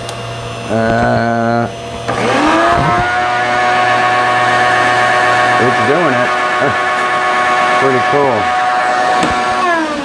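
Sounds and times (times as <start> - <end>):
electric motor whine: 0.0 - 10.0.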